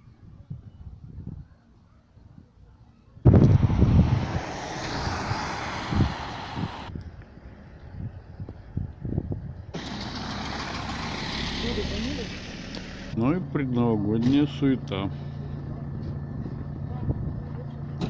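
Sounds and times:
road and wind noise of moving vehicle: 0.0s - 18.0s.

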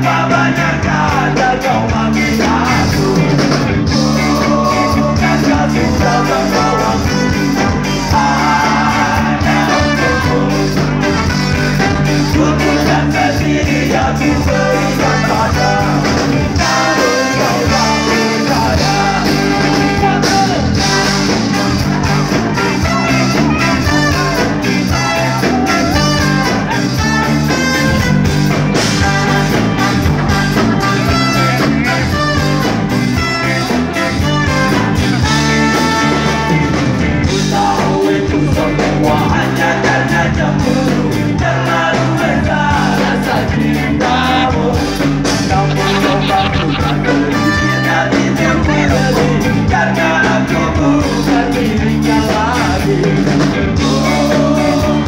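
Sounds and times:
drum kit: 0.0s - 55.0s
electric bass: 0.0s - 55.0s
lead singer: 0.0s - 55.0s
trumpet and trombone horns: 6.0s - 13.0s, 16.6s - 37.3s, 45.5s - 48.8s.

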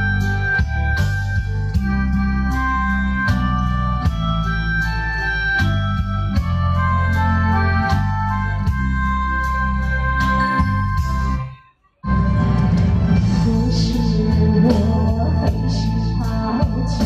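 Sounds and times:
heavy bass line: 0.0s - 17.0s
organ-like keyboard chords: 0.0s - 17.0s
drum strikes: 12.1s - 13.7s.

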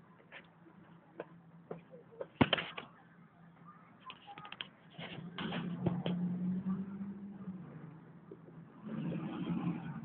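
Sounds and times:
vehicle engine hum and road noise: 4.3s - 10.0s.

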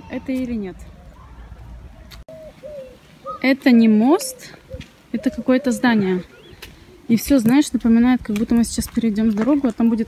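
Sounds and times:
dove cooing: 2.3s - 3.5s, 4.1s - 7.1s.

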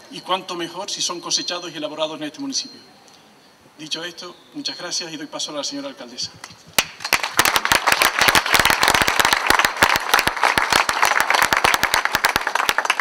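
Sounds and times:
audience applauding: 7.0s - 13.0s.

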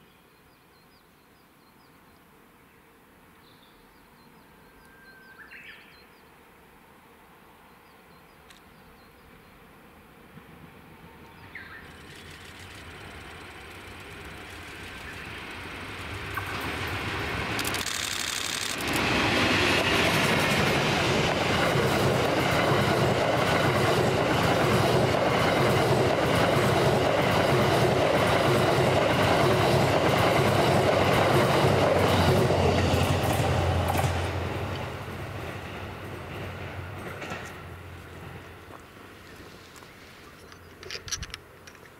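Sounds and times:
electric train passing: 9.9s - 40.3s
train wheels clicking on rails: 11.7s - 41.9s.

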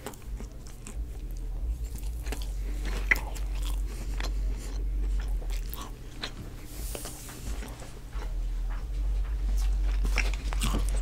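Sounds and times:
wet chewing mouth clicks: 0.0s - 8.4s
steady low hum: 0.0s - 11.0s.

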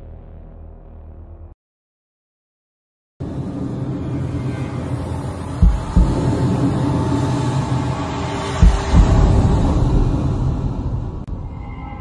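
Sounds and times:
low droning rumble: 3.2s - 12.0s
deep thumps: 5.6s - 6.3s, 8.6s - 9.5s.

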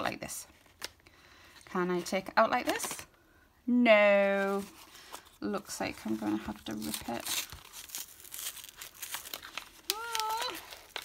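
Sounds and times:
wrapping paper crinkling: 4.4s - 11.0s.

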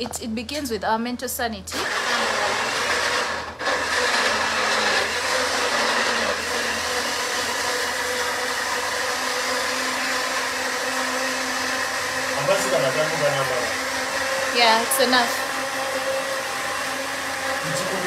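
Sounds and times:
electric blender running: 1.7s - 18.0s.

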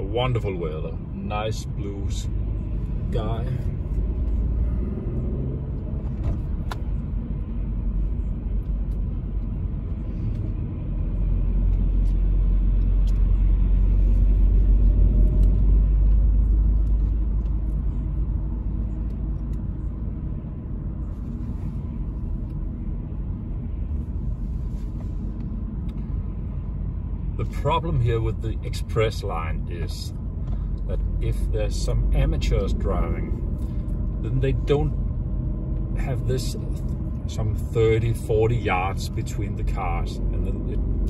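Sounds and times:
road and engine rumble in car: 0.0s - 41.0s.

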